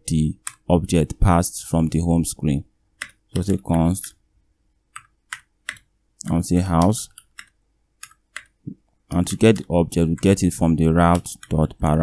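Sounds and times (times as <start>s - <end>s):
keyboard keys clicking: 6.7s - 12.0s.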